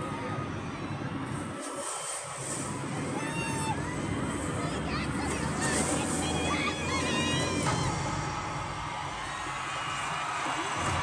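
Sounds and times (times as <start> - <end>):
crowd cheering: 0.0 - 11.0
fans shrieking: 0.0 - 11.0.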